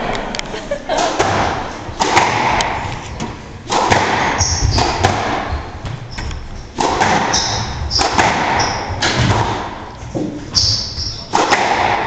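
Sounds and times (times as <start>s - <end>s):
squash ball hitting walls: 1.0s - 12.0s
shoes squeaking on hardwood: 4.3s - 9.3s, 10.0s - 11.3s.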